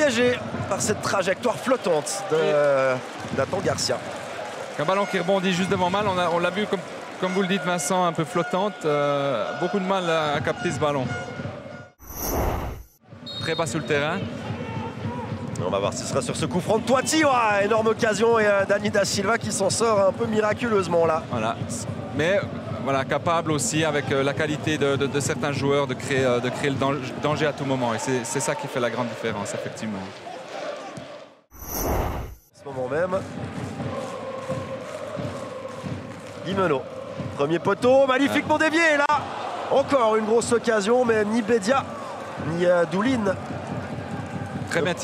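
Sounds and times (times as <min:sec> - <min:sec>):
rushing whoosh effect: 0:12.0 - 0:13.0, 0:31.5 - 0:32.5
stadium crowd chanting: 0:29.5 - 0:31.5, 0:33.2 - 0:40.8.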